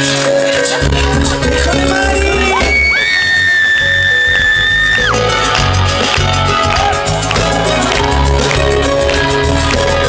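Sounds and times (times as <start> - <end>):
live pop-rock band: 0.0 - 10.0.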